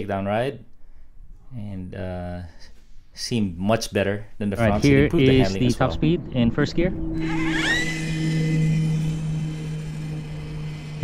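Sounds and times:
electric motor whine: 0:07.2 - 0:11.0.

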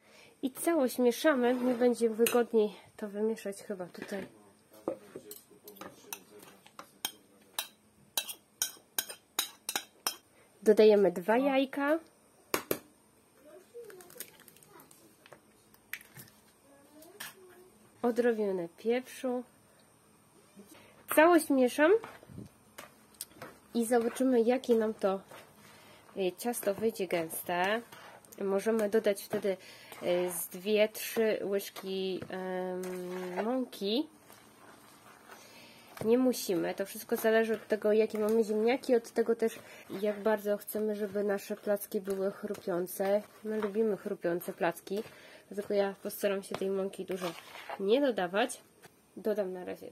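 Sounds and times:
spoon stirring wet batter: 0:01.1 - 0:02.5, 0:04.7 - 0:10.2, 0:20.6 - 0:49.0
eggs cracking: 0:13.8 - 0:14.9.

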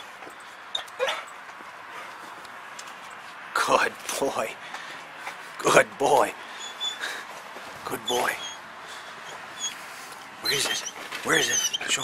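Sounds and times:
dog whimpering: 0:00.7 - 0:01.3, 0:06.5 - 0:07.3, 0:08.0 - 0:09.8, 0:10.4 - 0:12.0.

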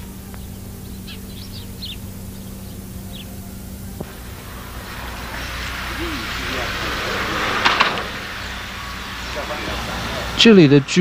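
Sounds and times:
car passing on road: 0:04.0 - 0:11.0.

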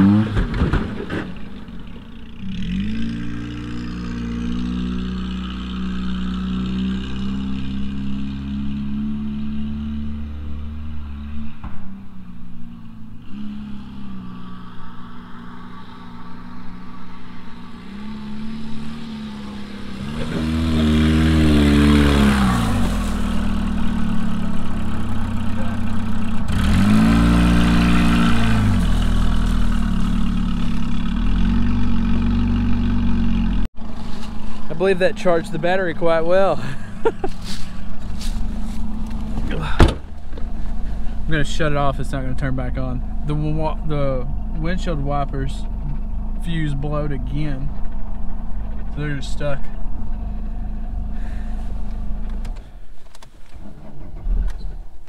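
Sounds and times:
car engine revving: 0:00.0 - 0:33.9.

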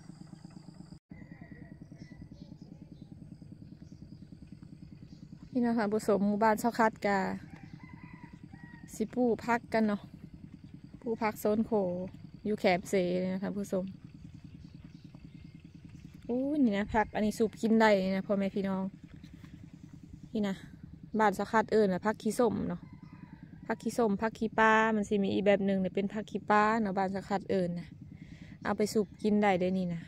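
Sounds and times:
small engine running: 0:00.0 - 0:30.0.

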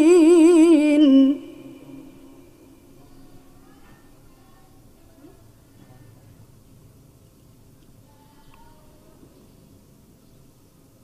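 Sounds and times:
echo: 0:00.0 - 0:03.0
melodic recitation voice: 0:00.0 - 0:04.8
low room noise: 0:00.0 - 0:11.0.

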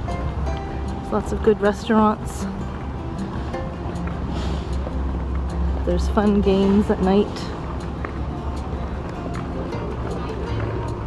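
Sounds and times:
low outdoor rumble: 0:00.0 - 0:11.0
woman speaking: 0:01.1 - 0:02.5, 0:05.8 - 0:07.5.

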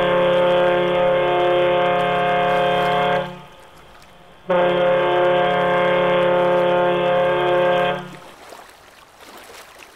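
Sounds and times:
ship horn blast: 0:00.0 - 0:08.4.

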